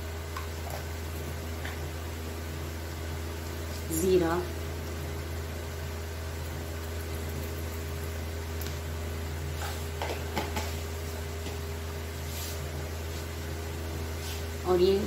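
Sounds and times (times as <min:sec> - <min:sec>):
seeds sizzling in hot oil: 0:00.0 - 0:14.6
steady low hum: 0:00.0 - 0:15.0.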